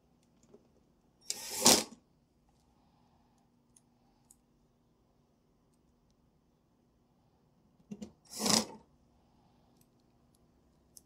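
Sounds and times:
cordless drill driving a screw: 1.2s - 2.0s, 8.3s - 8.7s.

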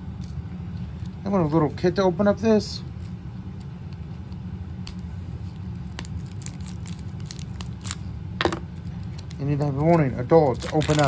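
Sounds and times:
steady low hum: 0.0s - 11.0s
plastic packaging clicks and crinkles: 4.9s - 8.0s, 8.8s - 11.0s.

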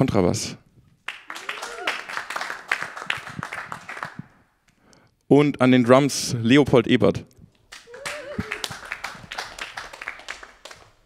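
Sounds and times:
people clapping: 1.0s - 4.4s, 7.6s - 11.0s.

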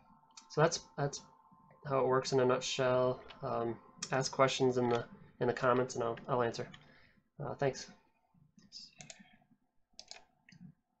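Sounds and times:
computer mouse clicking: 4.8s - 5.1s, 8.9s - 10.8s.

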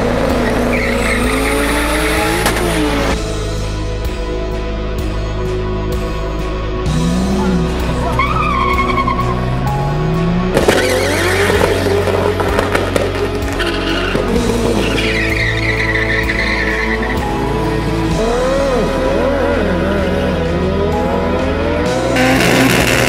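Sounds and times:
racing car engines revving: 0.0s - 3.2s, 6.8s - 23.0s
background music: 0.0s - 23.0s
tyre squeal: 0.4s - 1.8s.

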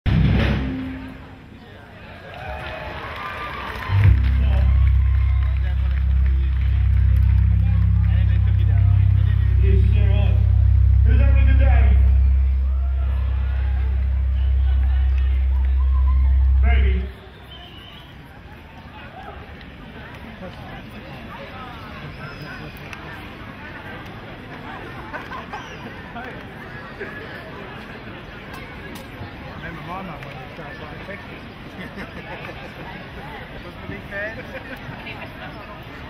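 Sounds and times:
crowd chatter: 0.1s - 36.0s
deep steady bass from speakers: 3.9s - 17.5s.

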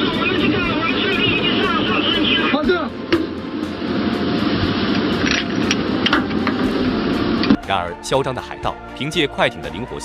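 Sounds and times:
rushing wind: 0.0s - 7.7s
ship noise: 0.0s - 8.4s.

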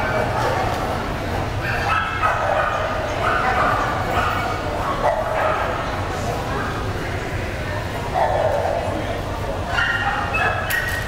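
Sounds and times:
murmur of people talking: 0.0s - 11.0s
dogs barking: 1.6s - 6.0s, 8.1s - 8.9s, 9.7s - 11.0s.

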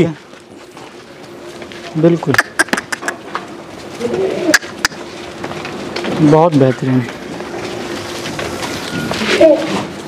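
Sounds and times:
bird cooing: 4.0s - 5.0s.

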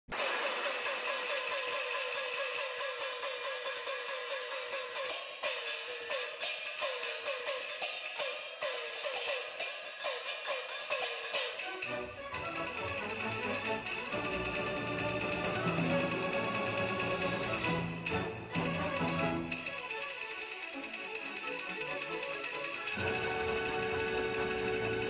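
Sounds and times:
sharp percussion strikes: 0.2s - 25.0s
orchestral opera music: 11.5s - 19.9s.

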